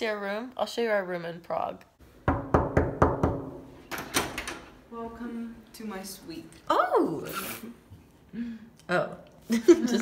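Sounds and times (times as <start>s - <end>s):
knuckles knocking on a door: 2.3s - 3.5s.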